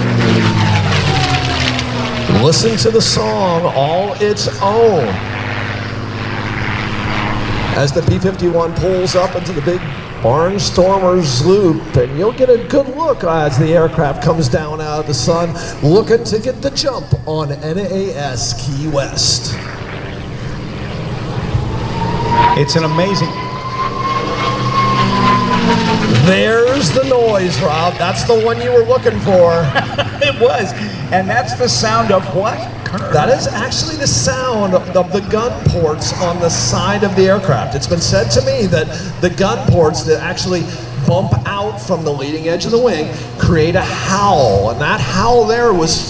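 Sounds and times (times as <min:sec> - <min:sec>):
propeller aircraft engine flyby: 0:00.0 - 0:46.0
thin whistle rising in pitch: 0:20.4 - 0:26.9.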